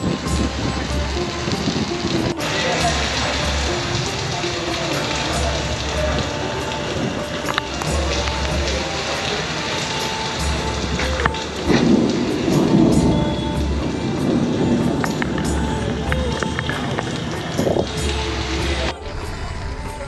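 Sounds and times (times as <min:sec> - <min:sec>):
background music with bass: 0:00.0 - 0:20.0
heavy rain on paving: 0:00.0 - 0:20.0.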